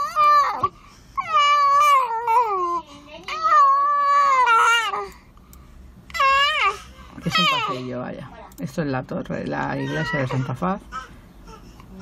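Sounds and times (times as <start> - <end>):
small child crying: 0.0 - 5.2, 6.1 - 7.9, 9.6 - 12.0.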